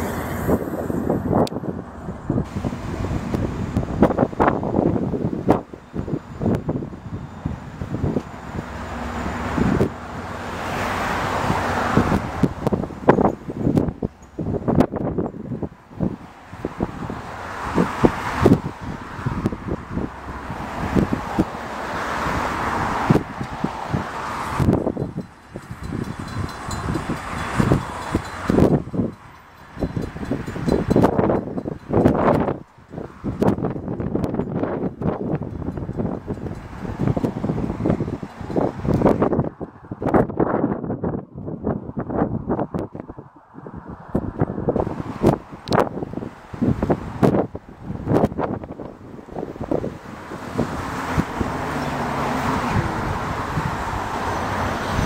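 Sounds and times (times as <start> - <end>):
slow diesel trains: 0.0 - 40.0
wind buffeting microphone: 0.0 - 55.0.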